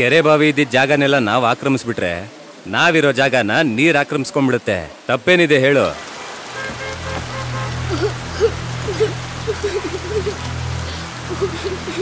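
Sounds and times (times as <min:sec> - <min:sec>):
heavy rain falling: 0:00.0 - 0:12.0
soundtrack music: 0:06.6 - 0:12.0.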